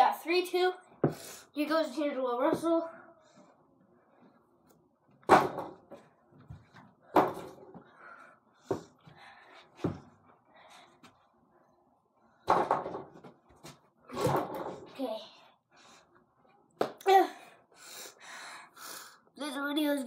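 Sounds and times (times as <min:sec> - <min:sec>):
ball hitting backboard and rim: 0:05.3 - 0:05.9.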